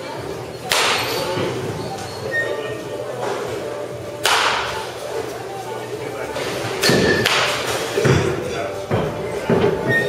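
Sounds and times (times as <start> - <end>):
baseball bat hitting balls: 0.6 - 1.5, 4.2 - 4.8, 6.8 - 8.4.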